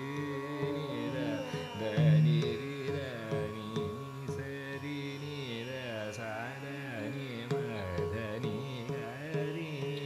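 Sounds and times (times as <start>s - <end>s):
tanpura drone: 0.0s - 4.2s
sliding vocal or melodic line: 1.1s - 3.1s
light drum strokes: 2.0s - 3.0s.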